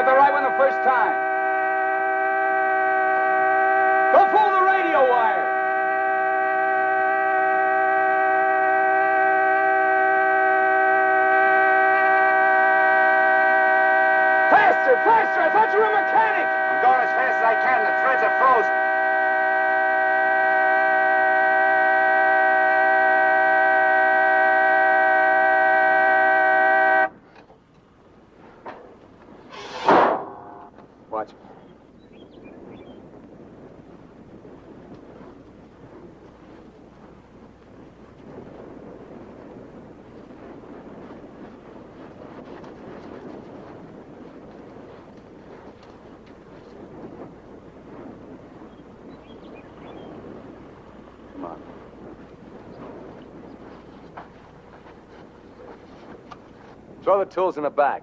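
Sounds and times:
car horn blaring: 0:00.0 - 0:27.2, 0:30.2 - 0:30.8
short sharp sound: 0:29.5 - 0:30.8.

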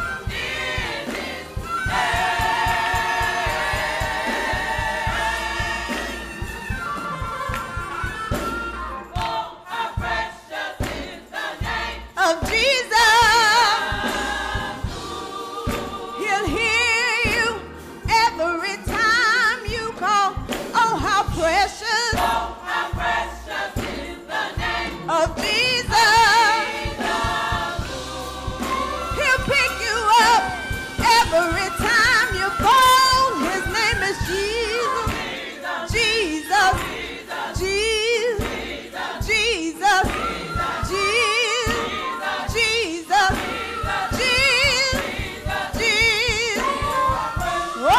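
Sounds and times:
rhythmic hand clapping: 0:00.0 - 0:17.8, 0:18.9 - 0:21.4, 0:22.1 - 0:47.9
choir singing: 0:00.0 - 0:19.8, 0:20.7 - 0:47.9
woman singing gospel lead: 0:09.2 - 0:38.6, 0:39.2 - 0:47.9.

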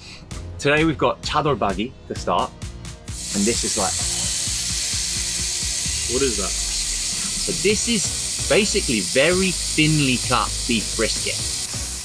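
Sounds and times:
background music: 0:00.0 - 0:12.0
beef sizzling on a grill: 0:03.1 - 0:12.0.

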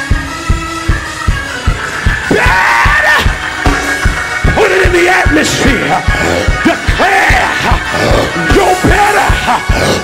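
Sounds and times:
kick drum beat: 0:00.0 - 0:07.9
live church band music: 0:00.0 - 0:10.0
man calling through microphone: 0:04.4 - 0:10.0.

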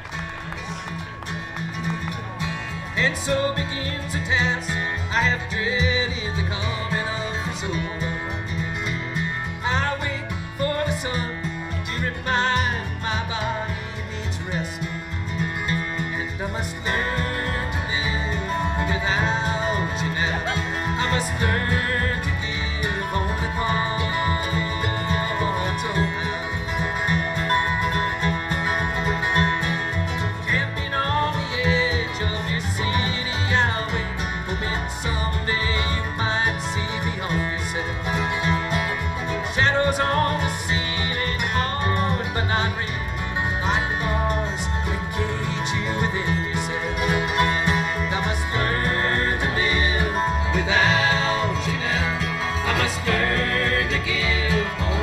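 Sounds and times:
banjo: 0:00.0 - 0:55.0
dobro: 0:00.0 - 0:55.0
guitars: 0:00.0 - 0:55.0
mandolin: 0:00.0 - 0:55.0
upright bass line: 0:00.0 - 0:55.0.

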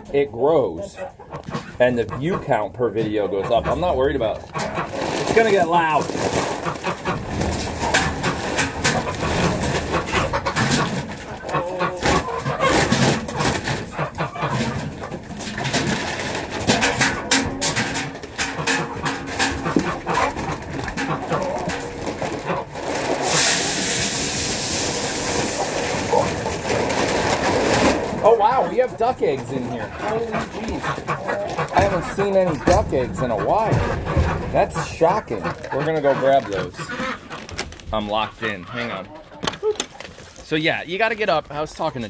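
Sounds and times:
chickens clucking and squawking: 0:00.0 - 0:40.2
feed rattling: 0:03.0 - 0:40.4.

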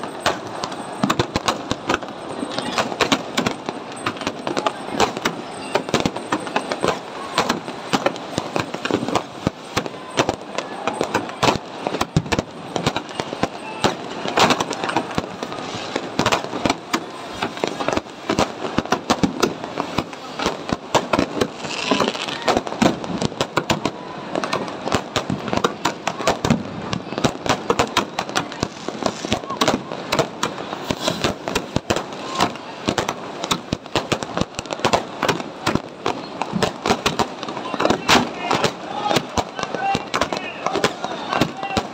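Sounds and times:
firecrackers and fireworks banging: 0:00.0 - 0:41.9.

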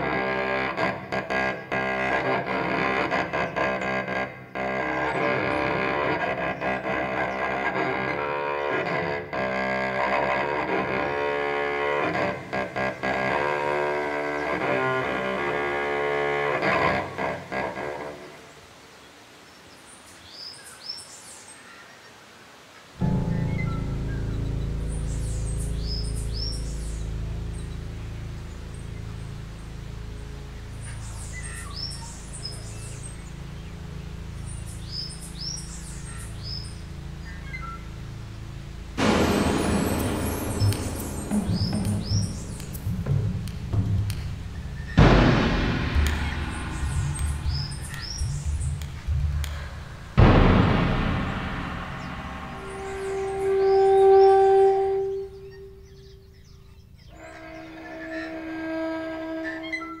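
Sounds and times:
long held horn notes: 0:00.0 - 0:18.5, 0:23.0 - 1:00.0
songbirds chirping: 0:00.0 - 1:00.0
low steady drone: 0:23.0 - 0:59.6
loud rush of noise: 0:39.0 - 0:43.0, 0:44.9 - 0:54.0.

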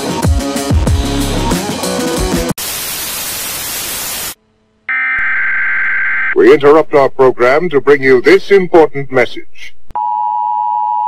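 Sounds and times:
music: 0:00.0 - 0:02.6, 0:04.4 - 0:04.9
tv static hiss: 0:02.6 - 0:04.4.

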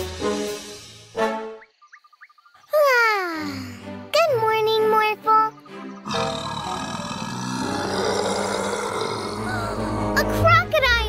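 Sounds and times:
music: 0:00.0 - 0:01.8, 0:02.8 - 0:08.0, 0:09.1 - 0:11.0
big cat roaring: 0:06.1 - 0:10.1.

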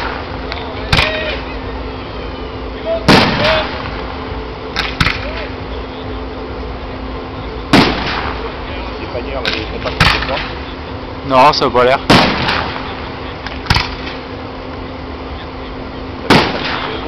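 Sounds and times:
fireworks bursting with bangs: 0:00.0 - 0:01.7, 0:03.0 - 0:05.7, 0:07.6 - 0:08.8, 0:09.4 - 0:10.8, 0:12.0 - 0:14.4, 0:16.2 - 0:17.0.

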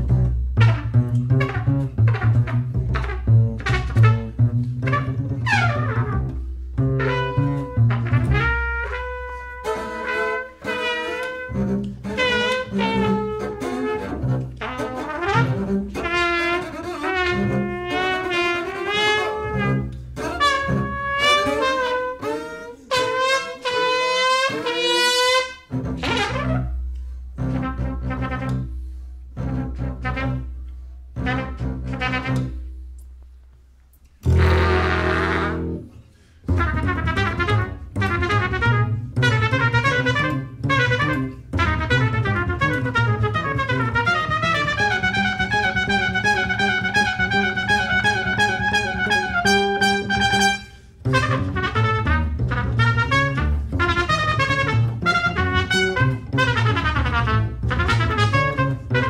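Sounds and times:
trumpet: 0:00.0 - 0:28.8, 0:29.4 - 0:32.7, 0:34.2 - 0:59.0
double bass notes: 0:00.0 - 0:59.0.

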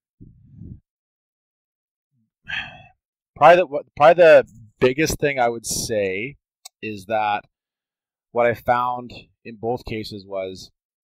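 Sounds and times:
man sighing: 0:02.5 - 0:03.0.

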